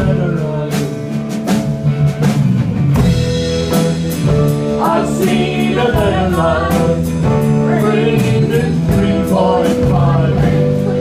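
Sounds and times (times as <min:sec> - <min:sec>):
woman and man singing: 0:00.0 - 0:01.2, 0:04.8 - 0:11.0
live band playing: 0:00.0 - 0:11.0.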